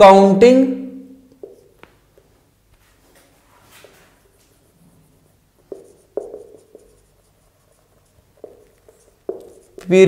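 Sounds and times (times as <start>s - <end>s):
marker writing on whiteboard: 1.3s - 2.3s, 3.3s - 10.0s
marker knocking on board: 1.4s - 1.8s, 5.6s - 10.0s.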